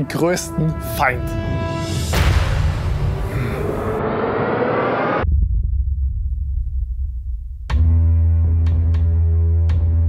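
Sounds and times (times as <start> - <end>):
low rumbling drone: 0.4 - 8.6
dense rushing swell: 1.3 - 5.3.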